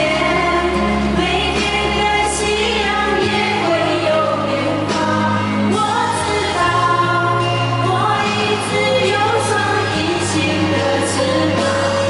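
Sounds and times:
women singing into microphones: 0.0s - 12.0s.

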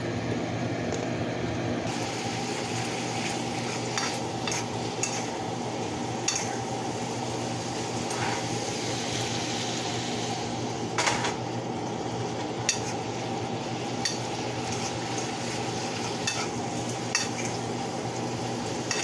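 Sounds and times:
chicken sizzling in a frying pan: 1.8s - 19.0s.

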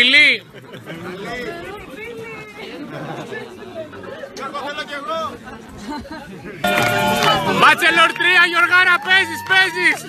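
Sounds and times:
party crowd chatter: 0.0s - 10.0s
live music: 6.6s - 8.1s.

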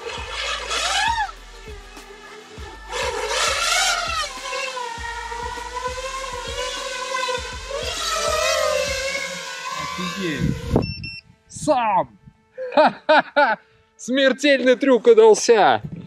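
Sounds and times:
quadcopter motors whining: 0.0s - 13.5s.

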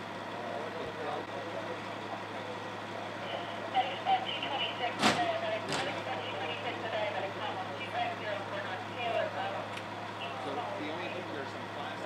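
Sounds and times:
vehicle engine idling: 0.0s - 12.0s
indistinct voices: 0.5s - 12.0s.

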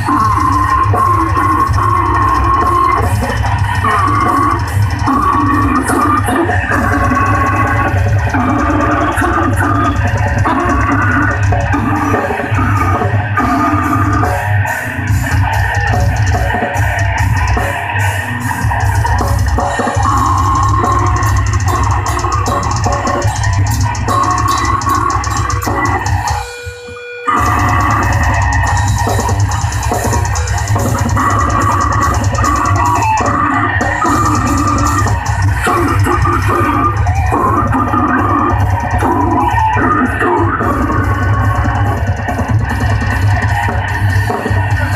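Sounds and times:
metal band playing: 0.0s - 44.9s.

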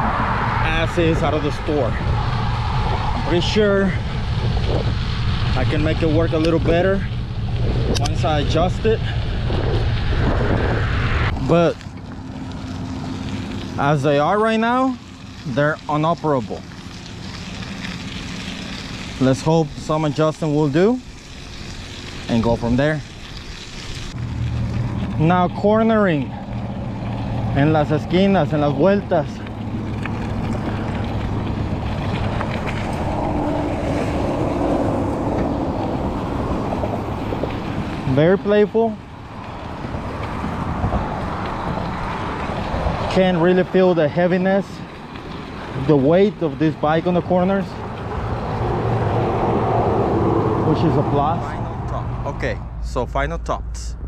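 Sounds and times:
wind on microphone: 0.0s - 11.5s
tyres rolling on gravel: 0.8s - 51.8s.

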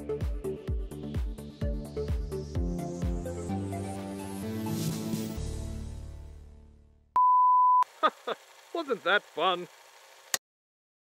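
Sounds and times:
music: 0.0s - 7.1s.

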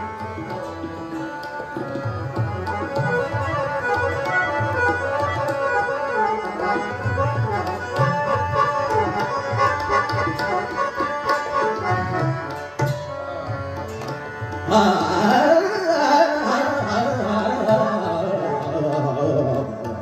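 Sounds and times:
tabla finger strokes: 0.0s - 15.6s
harmonium playing melodic phrases: 0.0s - 20.0s.

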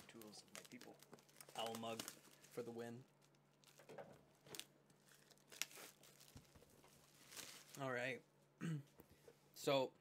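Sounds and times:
plastic wrap crinkling: 0.0s - 8.2s.

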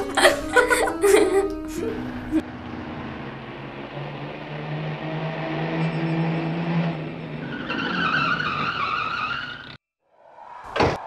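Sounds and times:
van engine approaching: 0.5s - 9.8s
high brake squeal: 3.9s - 9.8s.

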